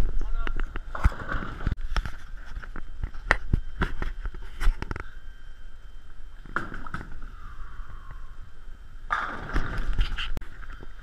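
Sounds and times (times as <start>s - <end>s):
ball crashing into pins: 6.5s - 7.2s, 9.1s - 9.9s.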